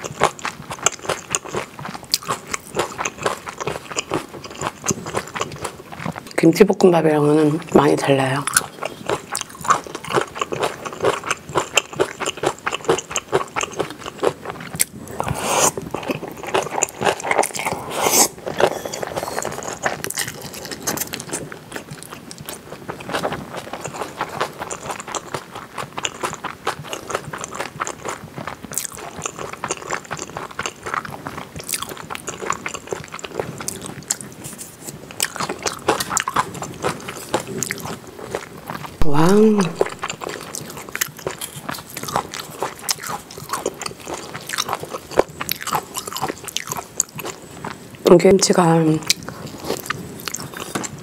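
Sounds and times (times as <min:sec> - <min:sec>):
chewing with mouth clicks: 0:00.0 - 0:06.4, 0:08.4 - 0:48.0, 0:49.0 - 0:51.0.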